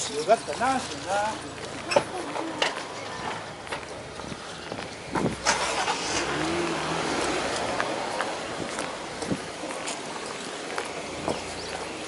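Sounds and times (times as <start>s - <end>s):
car driving by: 2.8s - 10.2s.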